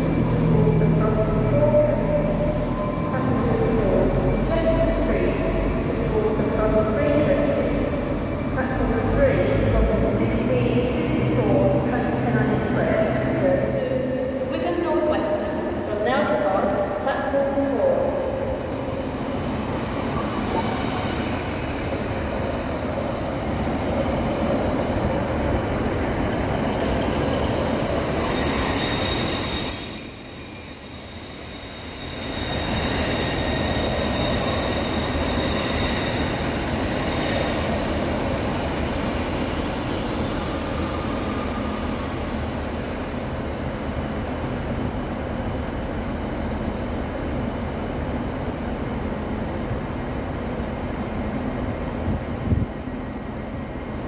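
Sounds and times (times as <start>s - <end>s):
diesel train engines: 0.0s - 54.0s
high wheel squeal: 28.0s - 42.4s.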